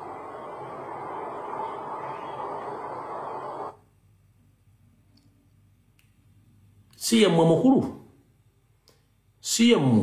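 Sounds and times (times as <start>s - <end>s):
rough old film soundtrack noise: 0.0s - 3.8s.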